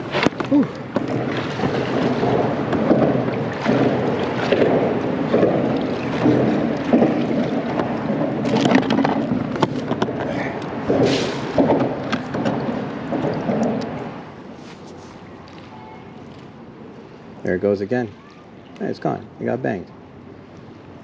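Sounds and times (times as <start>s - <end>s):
water slapping against kayak hull: 0.0s - 14.9s.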